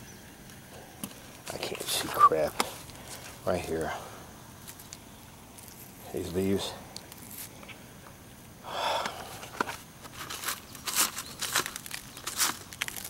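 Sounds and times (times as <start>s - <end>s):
leaves rustling: 0.3s - 13.0s.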